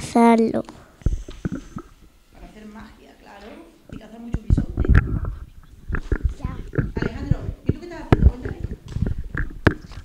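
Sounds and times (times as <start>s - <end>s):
microphone handling thumps: 4.3s - 10.0s.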